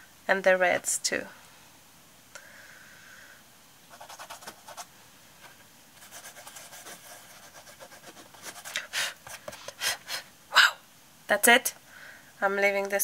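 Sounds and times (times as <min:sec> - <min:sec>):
person breathing: 0:02.3 - 0:03.5, 0:11.9 - 0:12.4.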